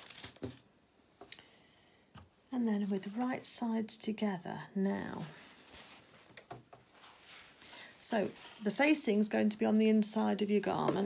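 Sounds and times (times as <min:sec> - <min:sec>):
fabric rustling: 0:05.0 - 0:09.3.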